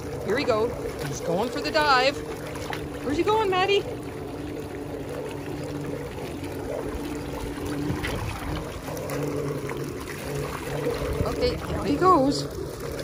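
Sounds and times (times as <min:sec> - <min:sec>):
motor hum: 0:00.0 - 0:13.0
water splashing and churning: 0:00.0 - 0:13.0.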